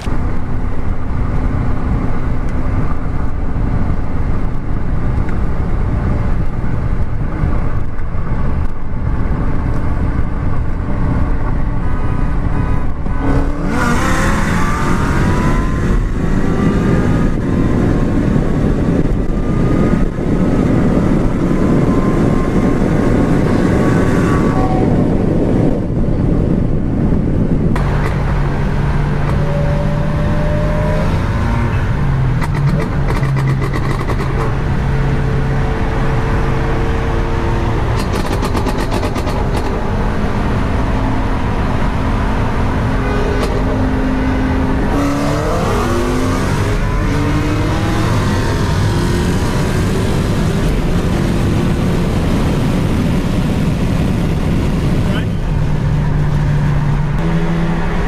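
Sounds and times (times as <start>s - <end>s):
loud engine drone in car cabin: 0.0s - 58.0s.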